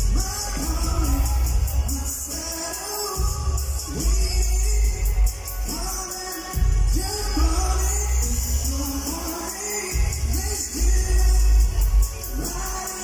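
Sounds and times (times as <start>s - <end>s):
backing track with heavy bass: 0.0s - 13.0s
man singing amplified: 0.0s - 13.0s.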